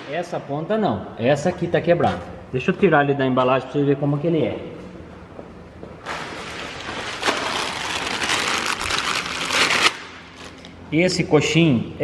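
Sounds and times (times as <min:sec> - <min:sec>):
plastic packaging crinkling: 0:06.0 - 0:10.8.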